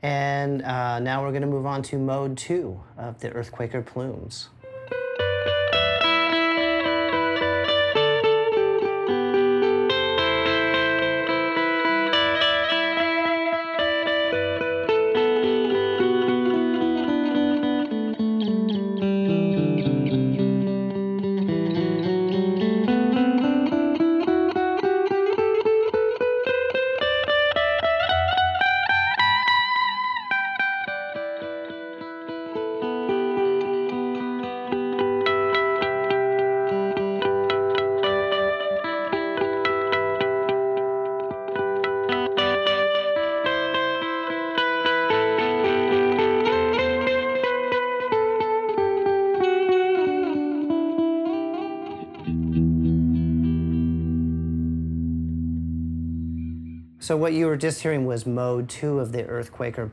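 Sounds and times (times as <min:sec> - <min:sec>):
electric guitar with delay: 0:04.5 - 0:58.0
guitar pitch glide: 0:04.6 - 0:57.6.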